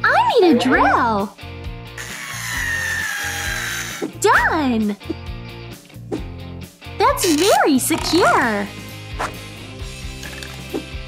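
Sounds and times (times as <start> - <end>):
cordless drill motor whine: 2.0 - 4.0.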